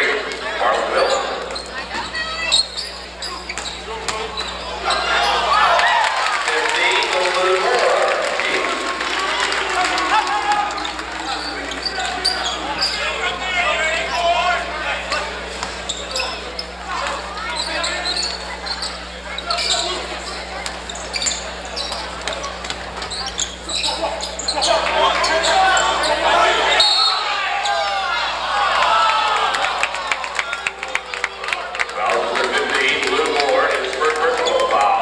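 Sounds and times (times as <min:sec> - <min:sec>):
spectators talking and calling out: 0:00.0 - 0:35.0.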